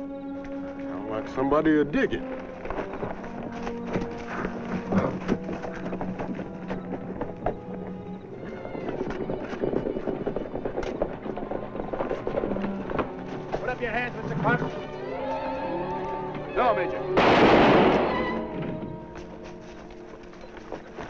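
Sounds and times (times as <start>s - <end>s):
film score music: 0.0s - 21.0s
horse hoofbeats: 0.0s - 21.0s.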